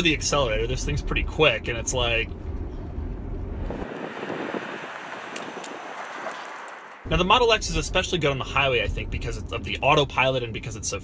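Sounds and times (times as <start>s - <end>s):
tyre and road noise: 0.2s - 9.8s
wind on microphone: 3.4s - 7.1s.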